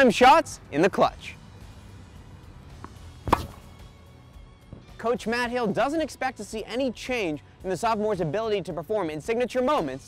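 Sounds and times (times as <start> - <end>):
tennis racket hitting ball: 2.8 - 3.8.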